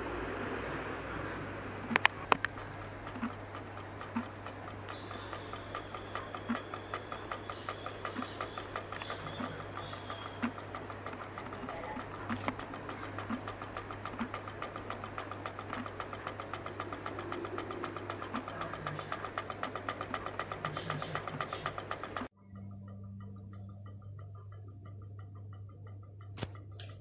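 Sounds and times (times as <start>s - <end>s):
motor rapid even ticking: 0.0s - 27.0s
steady low hum: 0.0s - 27.0s.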